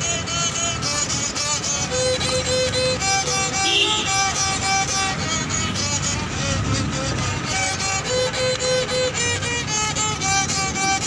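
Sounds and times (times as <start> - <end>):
fiddle melody: 0.0 - 11.0.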